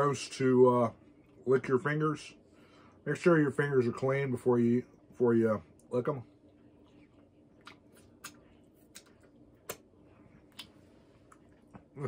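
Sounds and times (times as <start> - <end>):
faint steady hum: 0.0 - 12.0
wet mouth clicks and smacks: 6.8 - 11.9.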